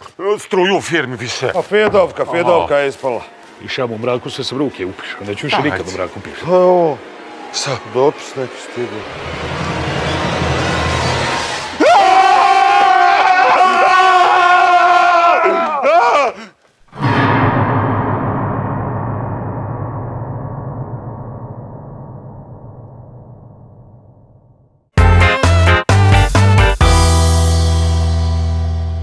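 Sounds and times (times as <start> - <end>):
deep booming hit: 16.9 - 24.7.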